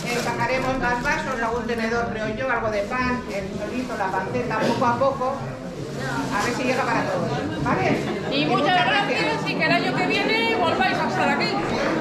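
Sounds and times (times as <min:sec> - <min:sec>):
woman talking: 0:00.0 - 0:05.4
people chattering: 0:00.0 - 0:12.0.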